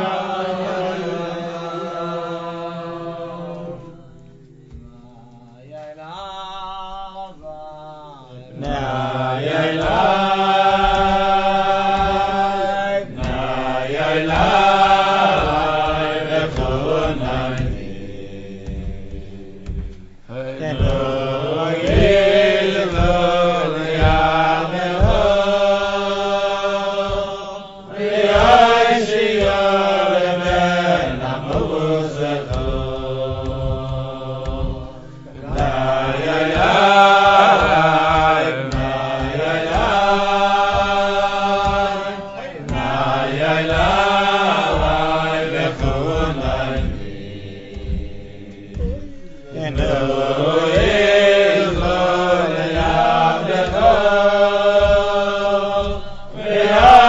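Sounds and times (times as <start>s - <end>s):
voices singing slow melody: 0.0s - 57.0s.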